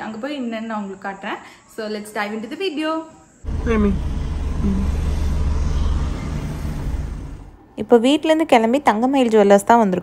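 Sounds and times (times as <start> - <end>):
car engine rumbling: 3.4 - 7.7.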